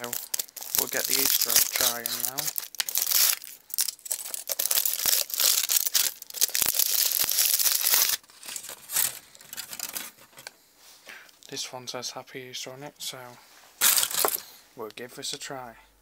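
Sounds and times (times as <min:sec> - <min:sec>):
foil wrapper crinkling and tearing: 0:00.0 - 0:10.5, 0:13.8 - 0:14.4
faint foil rustles: 0:00.0 - 0:11.6.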